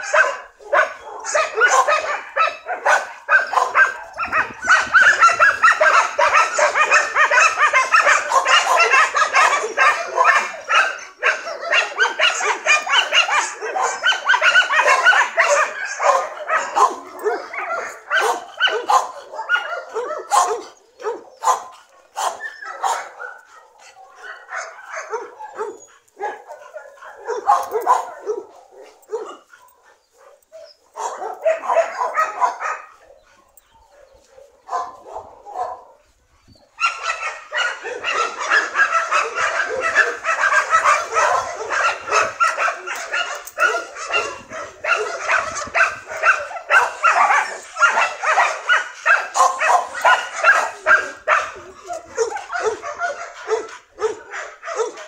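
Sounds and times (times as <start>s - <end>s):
dog barking: 0.0s - 36.0s, 36.8s - 55.0s.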